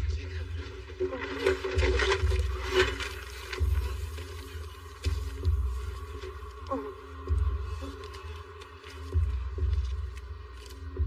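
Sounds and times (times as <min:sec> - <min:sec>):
low droning film score: 0:00.0 - 0:11.0.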